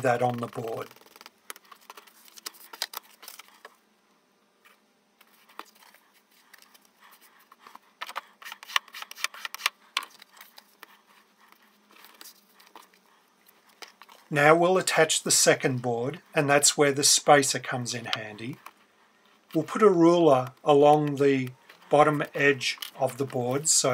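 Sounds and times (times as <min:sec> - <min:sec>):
paper rustling and scraping: 0:00.0 - 0:03.8, 0:04.6 - 0:14.3.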